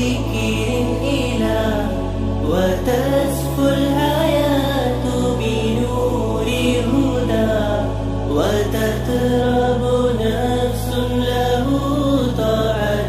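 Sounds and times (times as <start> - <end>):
low held drone: 0.0 - 13.0
person singing drawn-out vocal line: 0.0 - 13.0.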